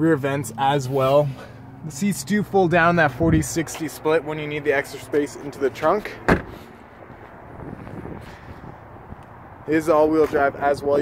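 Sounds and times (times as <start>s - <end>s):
wind on microphone: 7.4s - 9.3s.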